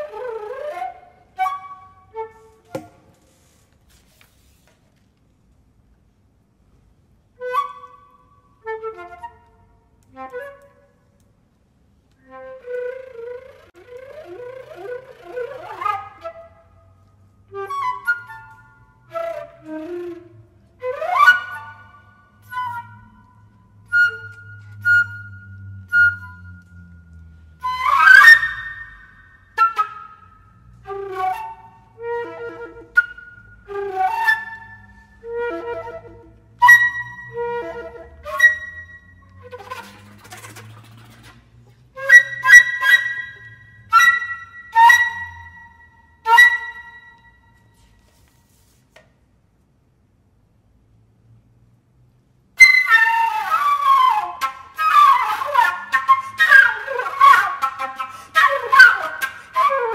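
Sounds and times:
flute playing: 0.0s - 3.4s, 7.3s - 11.2s, 12.1s - 48.2s, 52.6s - 59.9s.

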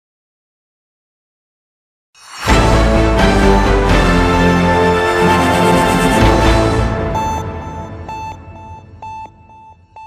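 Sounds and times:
news theme music: 2.4s - 10.0s
pulsing electronic beeps: 5.4s - 10.0s
longer electronic beep: 5.5s - 10.0s.

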